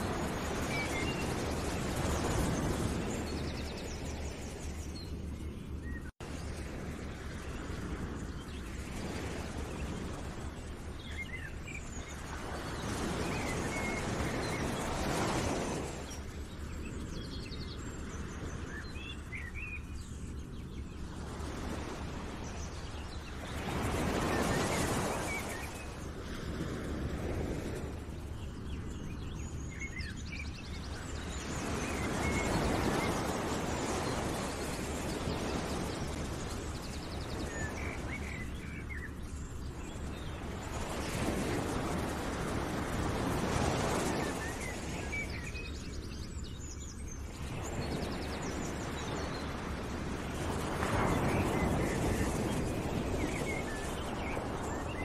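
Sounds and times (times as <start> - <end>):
small birds chirping: 27.8 - 55.0.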